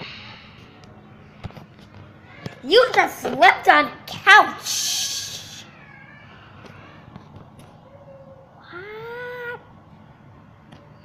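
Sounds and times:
high meow-like cry: 0:05.4 - 0:07.0.

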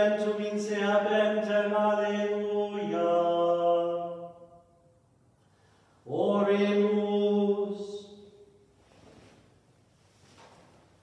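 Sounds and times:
man chanting in a church: 0:00.0 - 0:04.8, 0:05.9 - 0:08.7.

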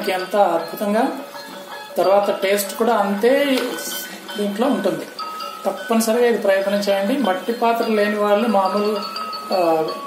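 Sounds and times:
person talking: 0:02.0 - 0:10.0.

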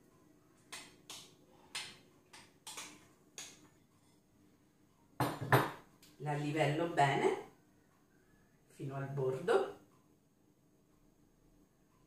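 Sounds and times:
knocks on a glass bowl: 0:05.2 - 0:05.8.

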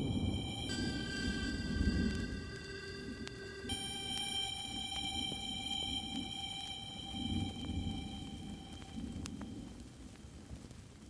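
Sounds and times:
low rumble: 0:00.0 - 0:10.2
quiet held chord music: 0:00.0 - 0:10.2.

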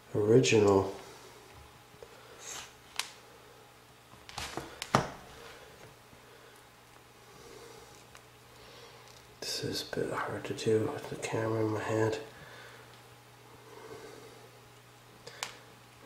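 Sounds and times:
faint steady hum: 0:00.0 - 0:16.0.

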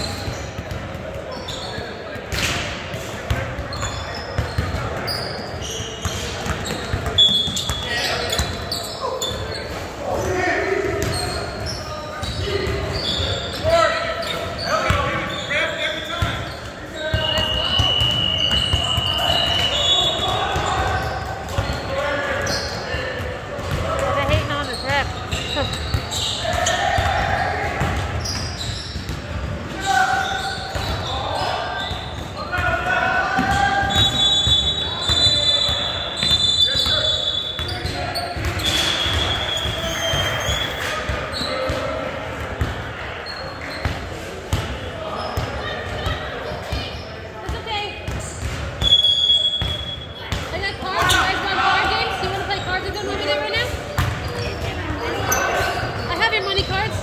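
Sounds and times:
shoe squeals: 0:00.0 - 0:32.6, 0:33.2 - 0:42.0, 0:42.6 - 0:44.2, 0:44.8 - 0:57.0
players calling out: 0:03.3 - 0:29.0, 0:48.8 - 0:57.0
basketball bouncing: 0:53.9 - 0:54.8.

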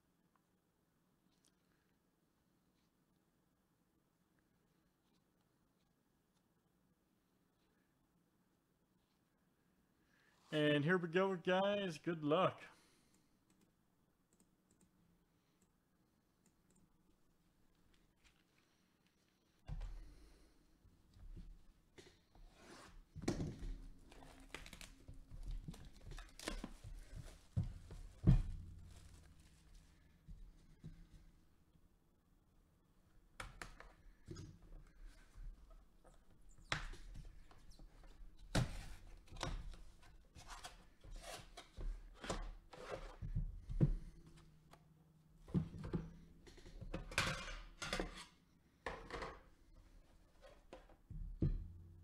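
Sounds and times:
wrapping crinkling and tearing: 0:24.1 - 0:26.9.

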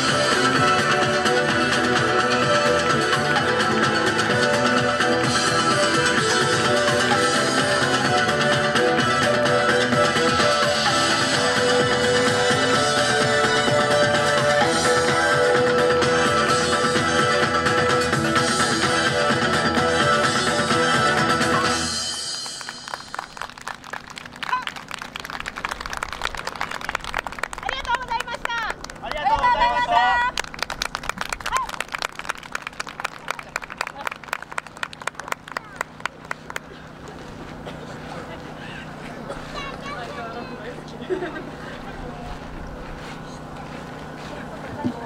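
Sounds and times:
dance music over loudspeaker: 0:00.0 - 0:22.3
audience clapping: 0:22.3 - 0:29.5, 0:30.2 - 0:36.7
voices: 0:32.9 - 0:45.0.

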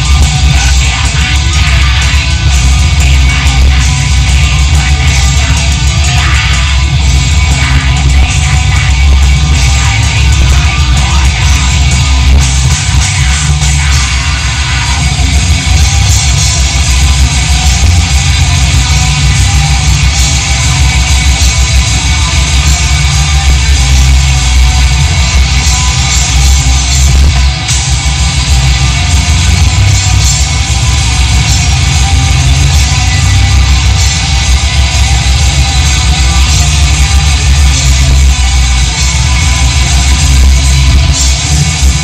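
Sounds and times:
distorted electric guitars: 0:00.0 - 0:42.0
fast dense drumming: 0:00.0 - 0:42.0.

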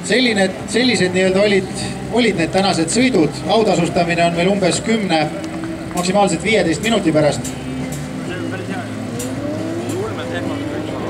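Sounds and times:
car engine running: 0:00.0 - 0:11.0
spectators chatting: 0:00.0 - 0:11.0.

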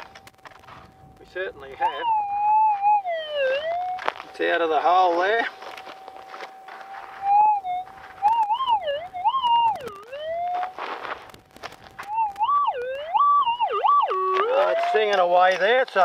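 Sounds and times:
metal detector warbling tone: 0:01.8 - 0:04.1, 0:04.8 - 0:10.8, 0:12.1 - 0:15.1
sharp clicks: 0:08.2 - 0:10.6, 0:11.2 - 0:15.0
scraping rustle: 0:09.9 - 0:12.1.

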